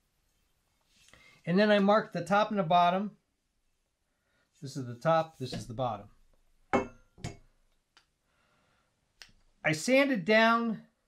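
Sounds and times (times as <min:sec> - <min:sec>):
metal pole knocking on table: 0:06.7 - 0:07.5.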